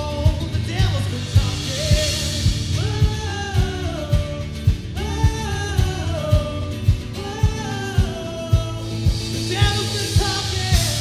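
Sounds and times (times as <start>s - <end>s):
electric guitar: 0.0s - 11.0s
singer holding long notes: 0.0s - 11.0s
kick drum beat: 0.2s - 11.0s.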